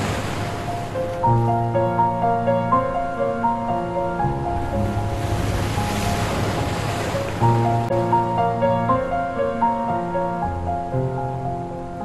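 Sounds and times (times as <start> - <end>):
ocean wave washing: 0.0 - 12.0
soft ambient music: 0.0 - 12.0.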